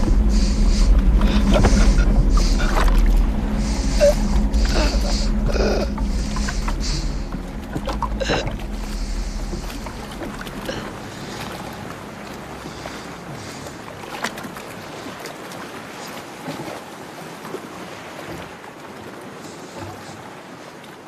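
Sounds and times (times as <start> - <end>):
low steady hum: 0.0 - 14.4
wind and water hiss: 0.0 - 21.0.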